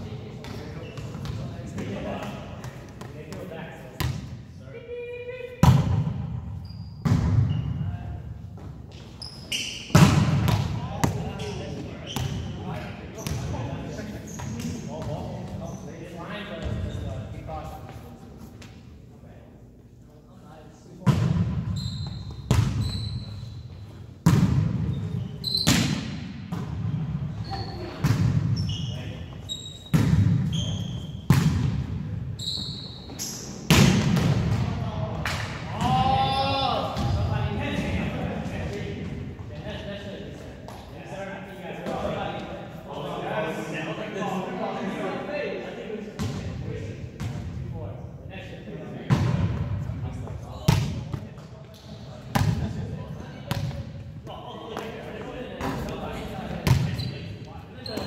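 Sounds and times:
sneakers squeaking on hardwood: 0.4s - 1.4s, 6.5s - 7.8s, 8.6s - 10.6s, 11.3s - 12.6s, 21.6s - 24.0s, 24.9s - 25.9s, 27.4s - 31.4s, 32.4s - 33.6s, 56.6s - 58.0s
volleyball smacks echoing: 9.9s - 11.2s, 31.3s - 31.9s, 33.7s - 36.0s.

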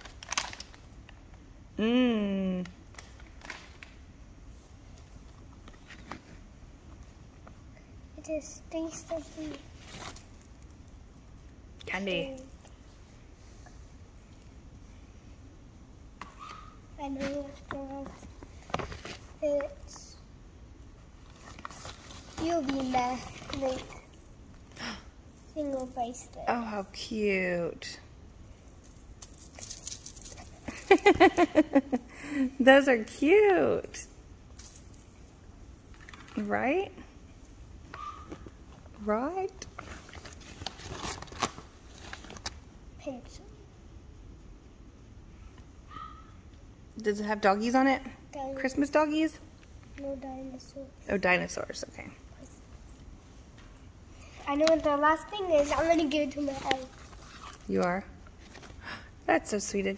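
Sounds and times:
girl's voice: 8.2s - 9.6s, 17.0s - 18.2s, 19.4s - 20.2s, 22.4s - 24.2s, 25.4s - 27.1s, 43.0s - 43.6s, 48.3s - 48.7s, 50.0s - 51.0s, 54.4s - 57.0s.

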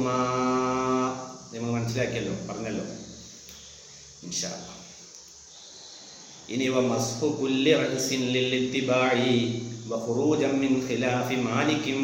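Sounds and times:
man chanting: 0.0s - 3.2s, 6.5s - 12.0s.

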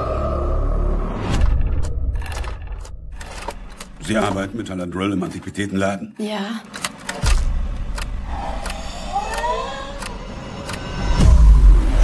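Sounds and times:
low drone: 0.0s - 2.9s.

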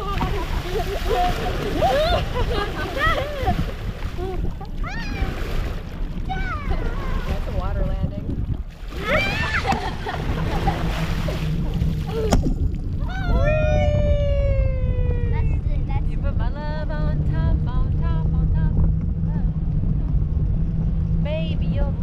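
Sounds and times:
sea water splashing: 0.0s - 13.8s
wind rumble on microphone: 0.0s - 22.0s
girl squealing and giggling: 1.0s - 3.6s, 9.0s - 10.0s
girl whooping: 1.8s - 2.3s, 4.2s - 5.4s, 9.0s - 9.8s, 13.0s - 15.5s.

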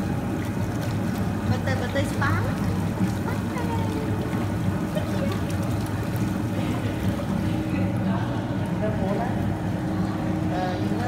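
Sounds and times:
churning bubbling water: 0.0s - 11.0s
low motor hum: 0.0s - 11.0s.

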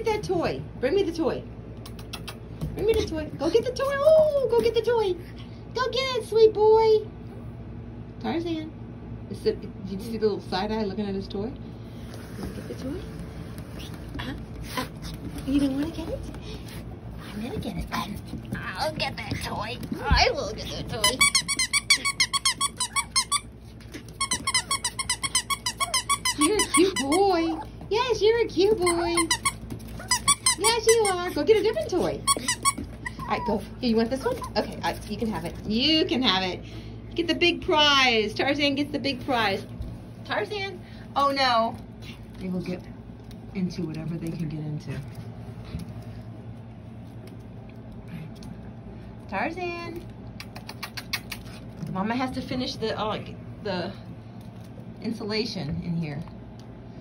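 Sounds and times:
squeaky dog toy squeaking: 20.9s - 27.6s, 28.8s - 31.4s, 32.2s - 33.6s.

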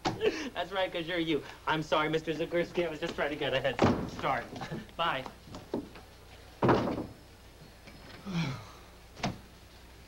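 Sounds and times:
wooden door slamming shut: 3.8s - 4.4s, 6.6s - 7.2s.

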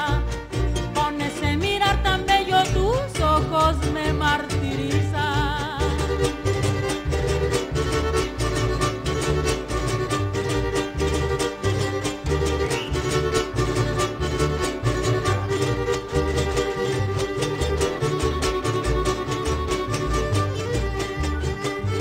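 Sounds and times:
strummed guitars: 0.0s - 22.0s
violin melody: 0.0s - 22.0s
pulsing bass beat: 6.0s - 22.0s.

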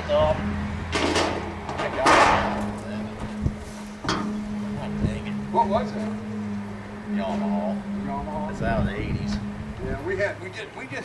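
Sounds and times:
low hum: 0.0s - 10.4s.

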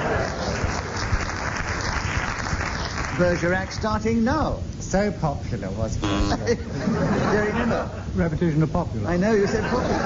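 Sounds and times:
audience laughing: 0.0s - 1.0s, 6.3s - 8.1s, 9.4s - 10.0s
audience applauding: 0.0s - 3.5s.

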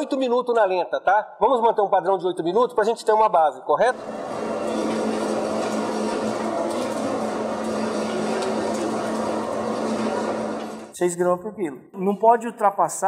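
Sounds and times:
dough mixer humming: 4.0s - 11.0s.

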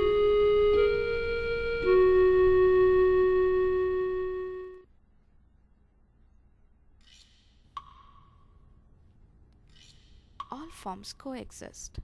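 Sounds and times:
held organ chord: 0.0s - 4.8s.

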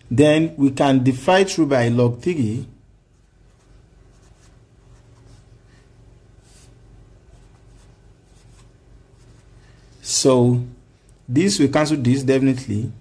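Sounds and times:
low steady hum: 0.0s - 13.0s
marker writing on paper: 3.1s - 5.5s.

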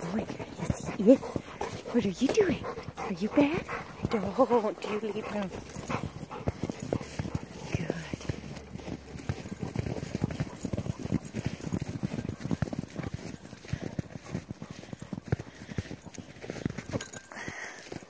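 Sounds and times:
footsteps crunching in snow: 3.9s - 18.0s.

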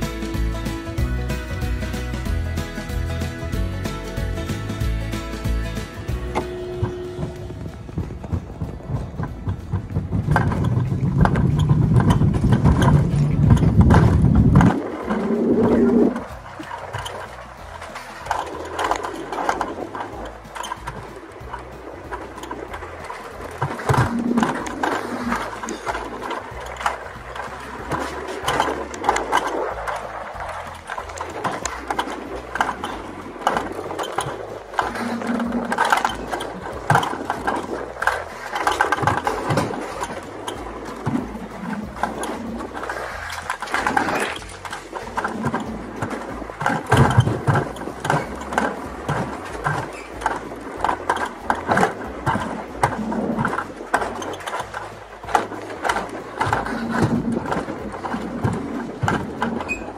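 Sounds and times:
sled wheels rattling and clicking: 0.0s - 59.9s
wind buffeting microphone: 4.4s - 59.9s.

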